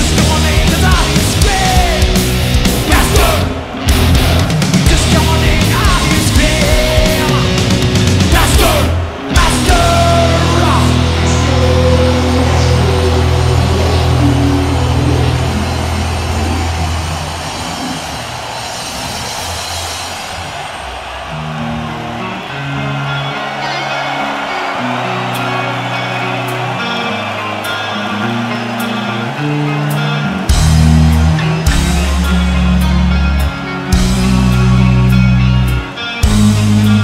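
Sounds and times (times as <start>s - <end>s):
crowd noise: 0.0s - 37.0s
distorted guitar chord ringing: 9.5s - 18.7s.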